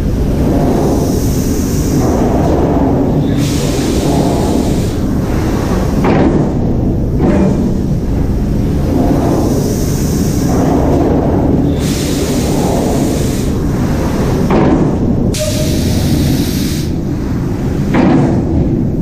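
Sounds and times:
assembly machinery clatter and rumble: 0:00.0 - 0:19.0
hiss bursts: 0:03.3 - 0:05.0, 0:11.8 - 0:13.6, 0:15.3 - 0:17.0.

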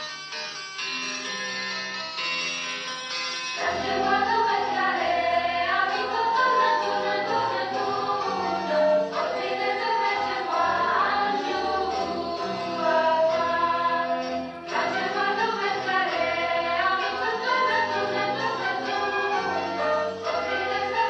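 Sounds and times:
instrumental accompaniment: 0:00.0 - 0:21.0
choir singing: 0:03.6 - 0:21.0.

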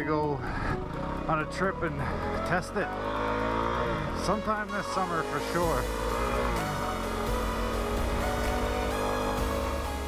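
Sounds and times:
dirt bike engine running: 0:00.0 - 0:10.0
tyres on gravel road: 0:00.0 - 0:10.0
electronic music: 0:05.1 - 0:10.0.

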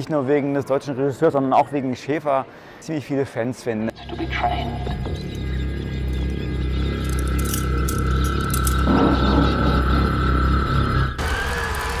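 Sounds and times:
deep drone: 0:03.9 - 0:11.9
sustained high tone: 0:08.1 - 0:11.2.

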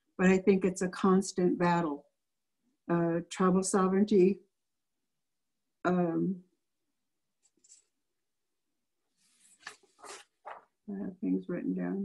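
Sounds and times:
paper crinkles and scrapes: 0:09.2 - 0:10.7
paper notes rustling: 0:09.2 - 0:10.8.

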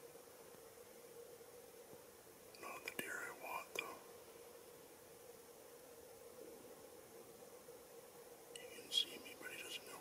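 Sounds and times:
faint steady hum: 0:00.0 - 0:10.0
person whispering: 0:02.6 - 0:04.1, 0:08.6 - 0:10.0.

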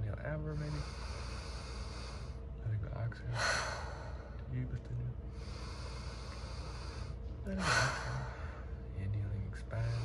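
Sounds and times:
long deep inhale: 0:00.5 - 0:02.4, 0:05.3 - 0:08.7.

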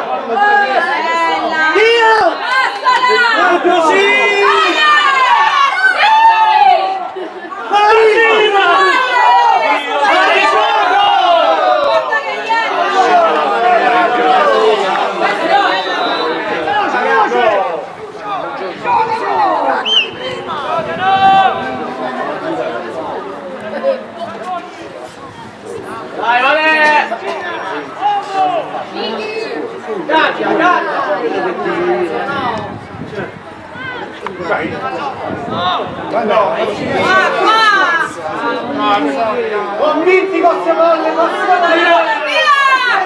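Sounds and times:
people shouting and chattering: 0:00.0 - 0:43.0
short high whistle: 0:19.8 - 0:20.2.

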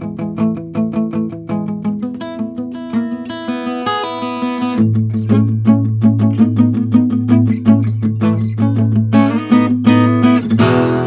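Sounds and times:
acoustic guitar picking and strumming: 0:00.0 - 0:11.0.

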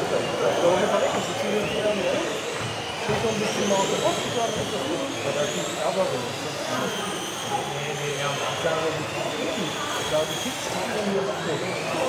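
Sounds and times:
chatter: 0:00.0 - 0:12.0
electric motors whining: 0:00.0 - 0:12.0.

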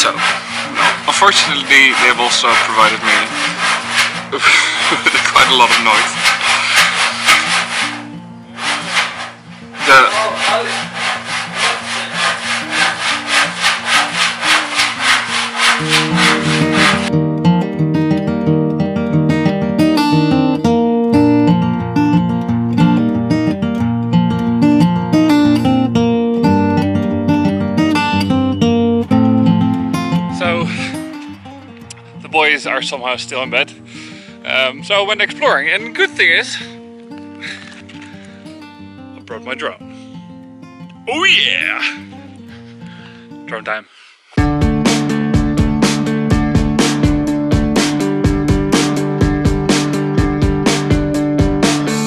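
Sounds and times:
rhythmic scraping: 0:00.0 - 0:17.2.

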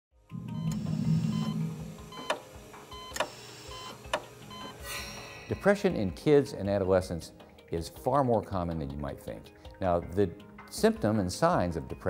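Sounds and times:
low sustained tone: 0:00.3 - 0:02.2
sharp musical hits: 0:00.3 - 0:02.7, 0:04.8 - 0:06.2
steady higher tones: 0:00.3 - 0:02.9, 0:04.9 - 0:06.6.

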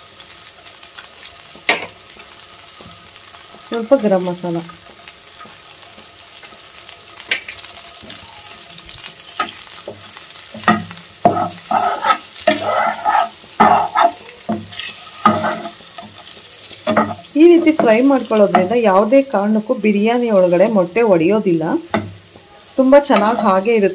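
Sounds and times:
eggs frying in oil: 0:00.0 - 0:23.9
spatula scraping a pan: 0:09.0 - 0:18.9, 0:21.9 - 0:23.9.

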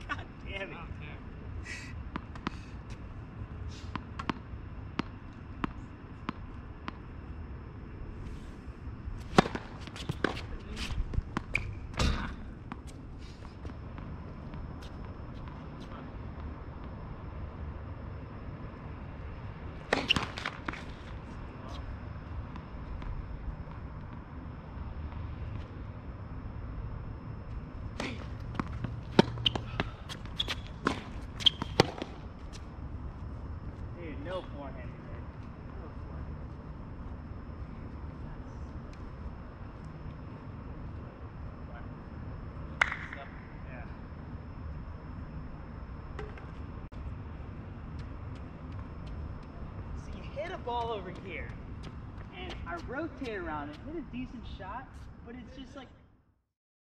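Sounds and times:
steady low rumble: 0:00.0 - 0:55.4
tennis balls bouncing on court: 0:03.9 - 0:07.0, 0:09.3 - 0:10.5, 0:19.8 - 0:21.1, 0:27.9 - 0:32.7
tennis balls struck by rackets: 0:03.9 - 0:07.0, 0:09.2 - 0:10.5, 0:19.8 - 0:21.0, 0:27.9 - 0:32.3, 0:42.8 - 0:43.3.

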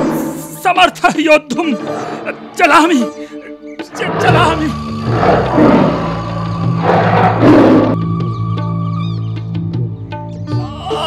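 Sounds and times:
lion roaring: 0:00.0 - 0:00.6, 0:01.8 - 0:02.6, 0:03.9 - 0:08.0
background music: 0:00.0 - 0:11.0.

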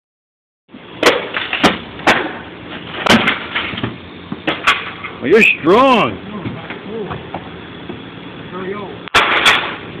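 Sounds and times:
wooden furniture crashing: 0:01.1 - 0:05.0.

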